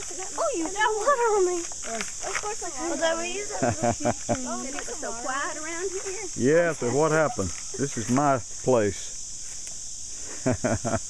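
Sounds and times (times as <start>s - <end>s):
insects chorus: 0.0s - 11.0s.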